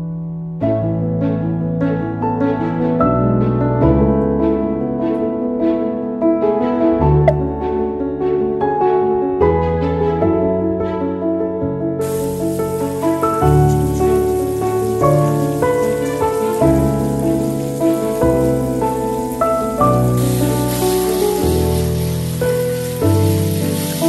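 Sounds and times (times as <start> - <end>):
instrumental background music: 0.4 - 24.0
hose spray hissing: 12.0 - 24.0.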